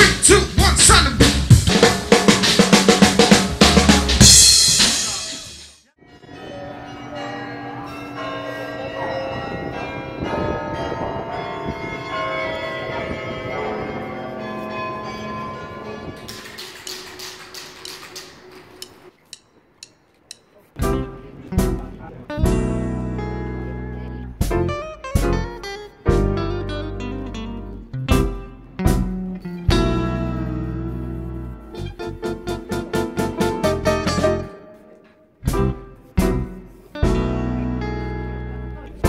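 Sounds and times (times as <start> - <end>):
fast drum kit with cymbal: 0.0 - 5.8
light ticking percussion: 18.8 - 20.6.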